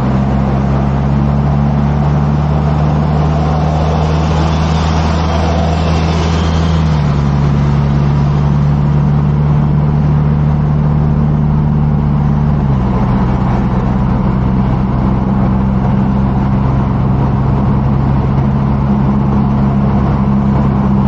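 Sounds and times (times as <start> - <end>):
car engine drone: 0.0 - 21.0
road and wind noise: 0.0 - 21.0.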